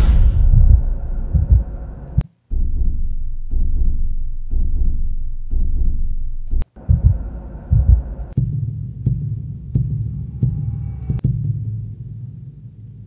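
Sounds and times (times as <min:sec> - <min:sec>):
deep heartbeat thumps: 0:00.0 - 0:11.8.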